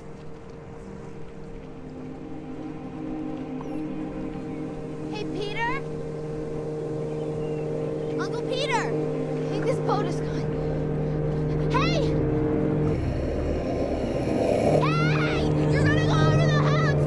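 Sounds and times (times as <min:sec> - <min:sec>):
boat engine humming: 0:00.0 - 0:17.0
muffled underwater rumble: 0:00.0 - 0:17.0.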